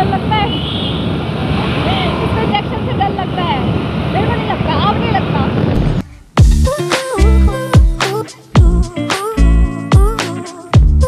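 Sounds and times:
motor scooter engine and road noise: 0.0s - 5.8s
wind rushing over microphone: 0.0s - 6.6s.

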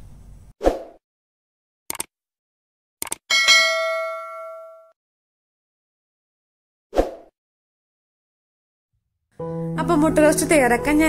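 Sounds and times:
short clicks: 1.9s - 2.1s, 3.0s - 3.2s
bright bell ding: 3.3s - 4.9s.

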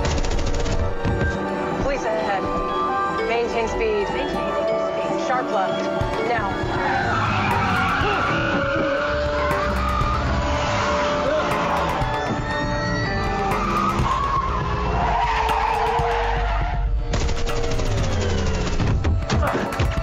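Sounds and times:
film score music: 0.0s - 20.0s
car engine: 6.4s - 19.0s
car tyres squealing and skidding: 6.5s - 17.0s.

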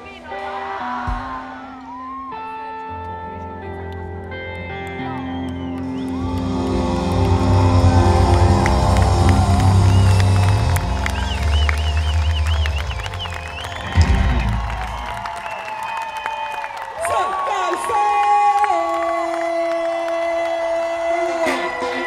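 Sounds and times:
crowd cheering: 0.0s - 3.0s, 4.4s - 22.0s
live band with heavy bass: 5.8s - 15.3s.

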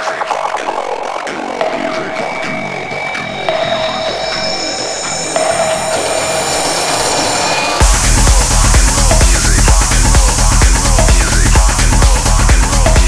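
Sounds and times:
heavy kick drum and bass beat: 0.0s - 13.0s
synth repeated tones: 0.0s - 13.0s.

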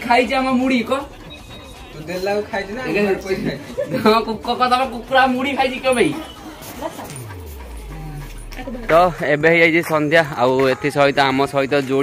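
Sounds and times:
dog whimpering and yipping: 0.6s - 3.9s
low tone sliding downward: 5.6s - 9.7s.

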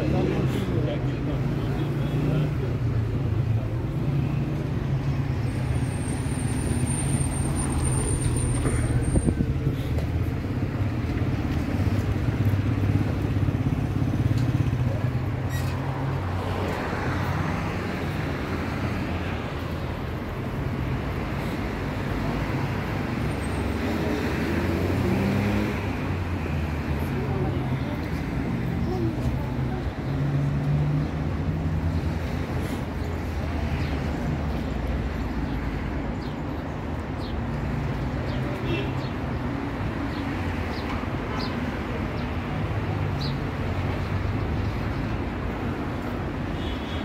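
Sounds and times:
passersby talking: 0.0s - 5.2s, 7.3s - 35.6s
traffic noise: 0.0s - 47.0s.

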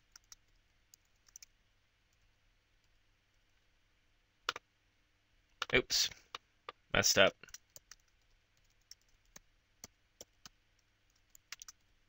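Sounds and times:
soft keyboard keystrokes: 0.0s - 1.5s, 7.4s - 11.9s.

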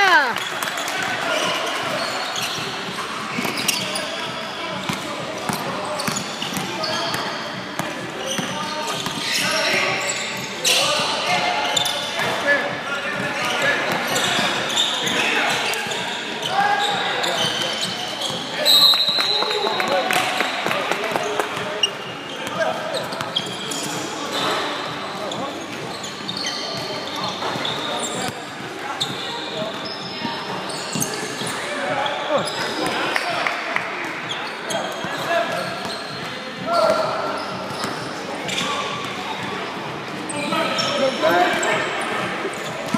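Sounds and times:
hubbub of voices: 0.0s - 42.9s.

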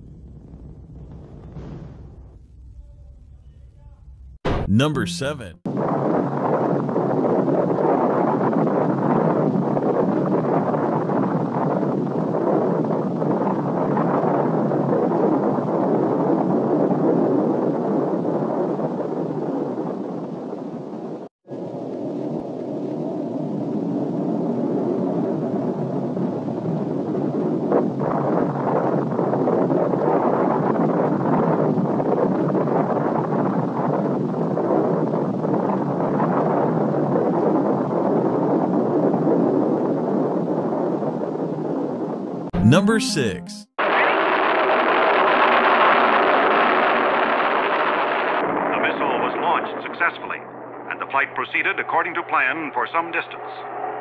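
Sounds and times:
rocket explosion and fireball roar: 0.0s - 2.6s.

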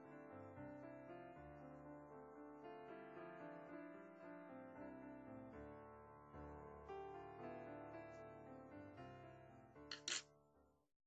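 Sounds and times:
soft piano music: 0.0s - 10.8s.

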